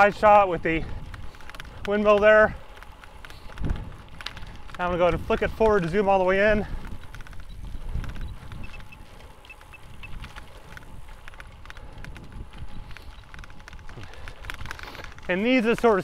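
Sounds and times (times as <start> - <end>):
bicycle clicks and rattles: 0.0 - 16.0
wind buffeting microphone: 0.0 - 16.0.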